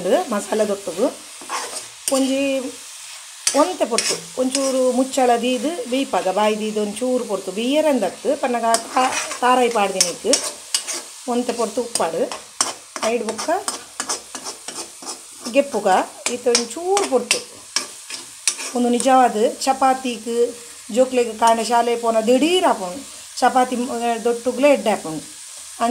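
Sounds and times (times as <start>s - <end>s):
food sizzling in pan: 0.0s - 25.9s
spatula scraping and clicking on pan: 1.3s - 2.3s, 3.1s - 4.9s, 8.7s - 11.2s, 11.9s - 15.6s, 16.2s - 18.8s.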